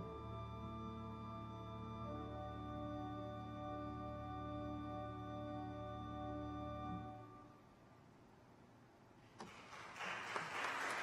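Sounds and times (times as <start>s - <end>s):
audience applause: 9.4s - 11.0s.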